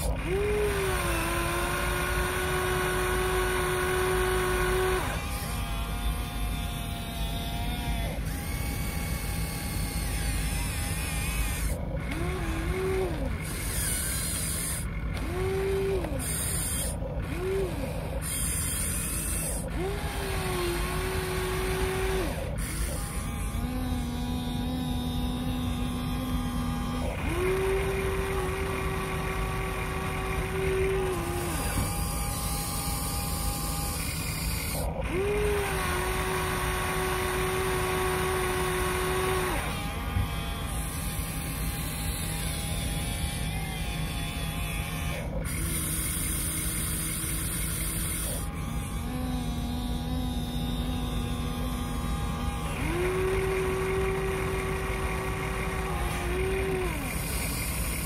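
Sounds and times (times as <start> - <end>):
hydraulic pump whining: 0.0 - 58.0.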